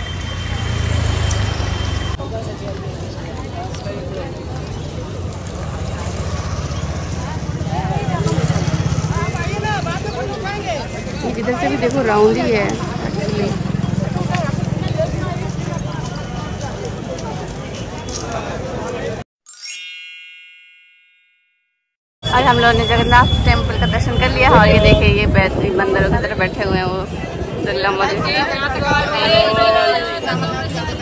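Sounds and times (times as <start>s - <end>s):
crowd voices: 2.1s - 19.2s, 22.3s - 31.0s
bright ringing chime: 19.5s - 21.9s.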